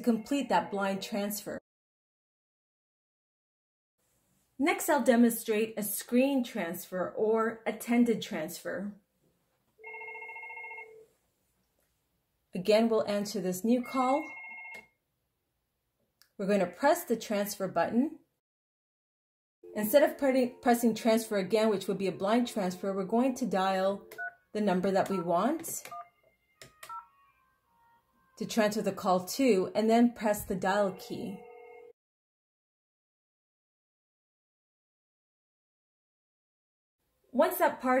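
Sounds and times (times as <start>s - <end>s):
desk phone electronic ringtone: 9.8s - 11.1s, 13.8s - 15.0s, 24.0s - 28.4s, 30.8s - 32.0s
two-tone touch tone: 25.0s - 28.0s, 30.8s - 32.0s.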